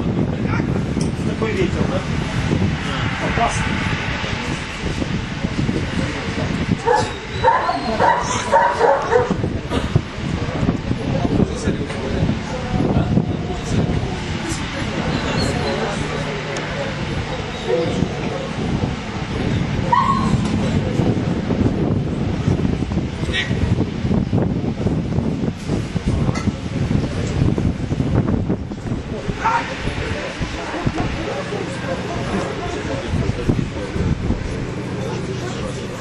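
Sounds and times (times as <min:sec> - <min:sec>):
low rumble: 0:00.0 - 0:36.0
dog yipping and whining: 0:06.9 - 0:09.3, 0:19.9 - 0:20.4.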